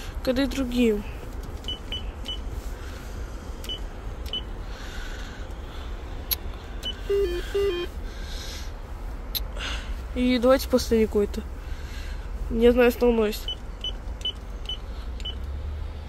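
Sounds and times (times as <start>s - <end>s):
intercom keypad beeps: 6.8s - 7.9s.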